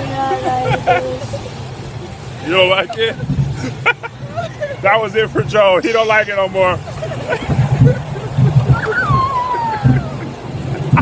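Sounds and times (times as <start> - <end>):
roller coaster train running: 0.0 - 11.0
wind buffeting microphone: 0.0 - 11.0
person laughing: 0.6 - 1.6, 8.8 - 11.0.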